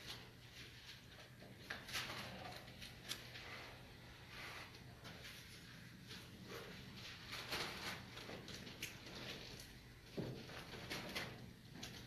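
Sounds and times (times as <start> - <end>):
paper pages rustling: 4.4 - 9.7.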